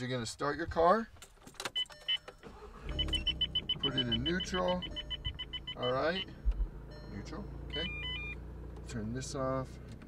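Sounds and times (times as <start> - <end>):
car engine starting and idling: 1.4 - 10.0
rapid car warning chime: 1.8 - 8.5.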